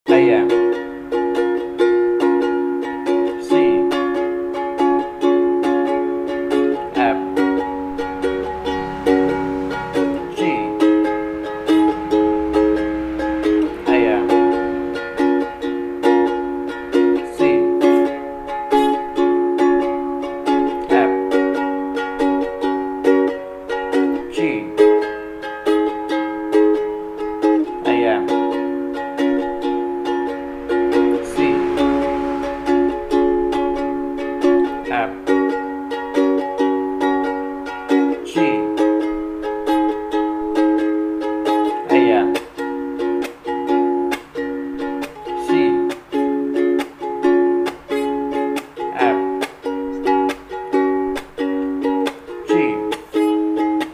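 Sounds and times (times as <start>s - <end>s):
ukulele strummed: 0.1s - 53.9s.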